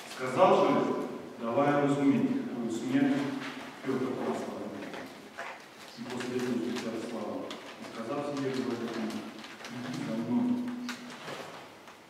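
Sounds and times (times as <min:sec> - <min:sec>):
man speaking low: 0:00.2 - 0:05.1, 0:06.0 - 0:10.9.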